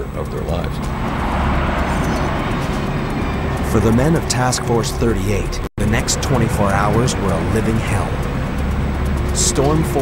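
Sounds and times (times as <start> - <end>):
strong wind: 0.8 - 10.0.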